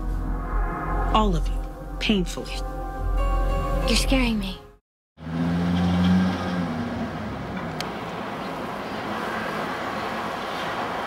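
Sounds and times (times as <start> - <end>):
road noise rushing: 5.2 - 11.0.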